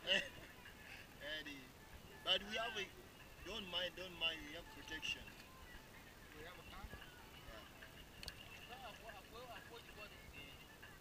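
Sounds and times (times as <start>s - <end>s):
faint voices talking: 0.0s - 11.0s
steady low hiss: 0.0s - 11.0s.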